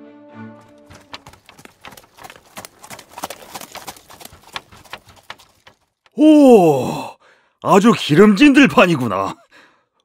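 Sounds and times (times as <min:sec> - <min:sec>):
background music: 0:00.0 - 0:01.3
horse hooves clip-clopping: 0:00.6 - 0:06.0.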